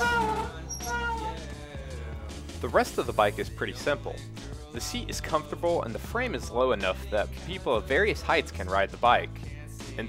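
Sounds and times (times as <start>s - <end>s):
bicycle disc brakes squealing: 0.0s - 1.4s.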